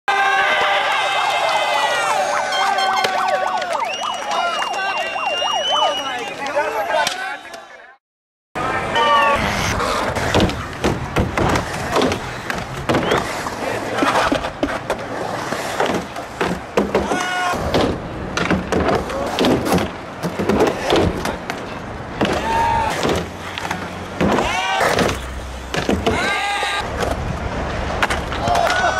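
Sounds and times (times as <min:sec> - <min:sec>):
siren-like wail sweeping in pitch: 0:01.9 - 0:06.2
steady high whistle: 0:02.1 - 0:06.5
people calling out: 0:08.6 - 0:09.5, 0:17.0 - 0:17.7, 0:22.3 - 0:23.0, 0:24.3 - 0:25.0, 0:26.0 - 0:26.8
skateboard wheels rolling: 0:08.6 - 0:28.9
skateboards clacking on concrete: 0:09.2 - 0:28.9.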